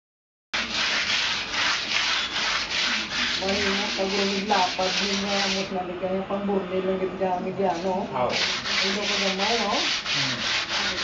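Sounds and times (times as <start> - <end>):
abrasive rubbing on concrete wall: 0.6 - 5.8, 7.5 - 11.0.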